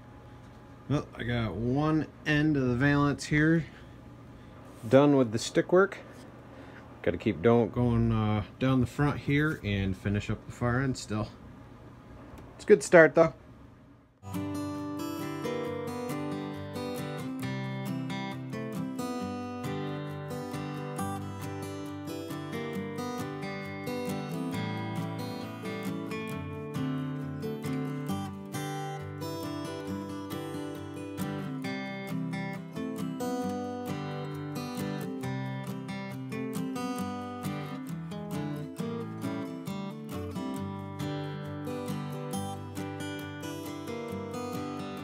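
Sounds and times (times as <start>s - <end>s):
strummed acoustic guitar music: 0.0s - 11.3s, 14.2s - 45.0s.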